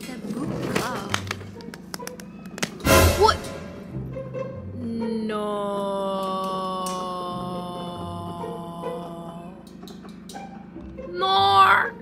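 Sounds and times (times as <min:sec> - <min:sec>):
music: 0:00.0 - 0:12.0
person crying out no: 0:05.0 - 0:09.6, 0:11.1 - 0:12.0.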